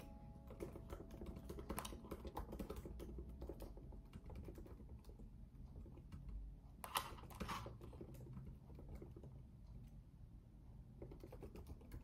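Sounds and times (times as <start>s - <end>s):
typing on laptop keyboard: 0.0s - 9.4s, 11.0s - 12.0s.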